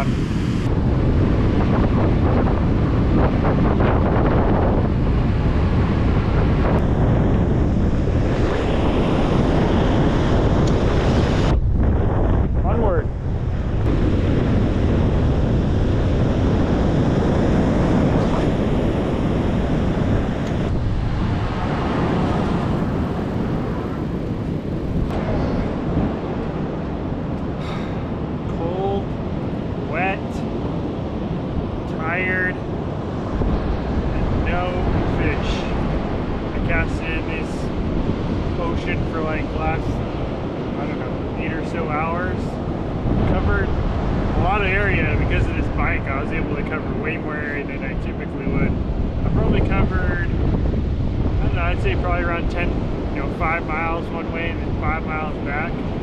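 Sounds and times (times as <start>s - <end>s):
surf: 0.0s - 56.0s
wind buffeting microphone: 0.0s - 56.0s.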